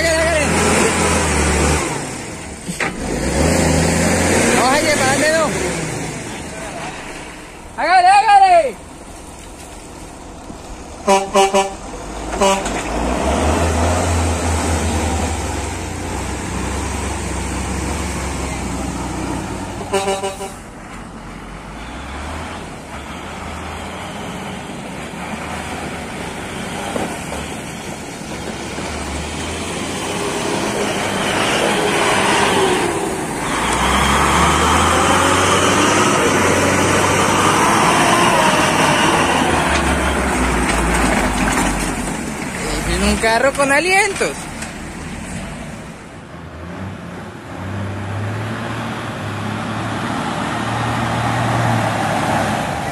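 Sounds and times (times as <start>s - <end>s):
truck horn toots: 11.0s - 12.8s, 19.8s - 20.7s.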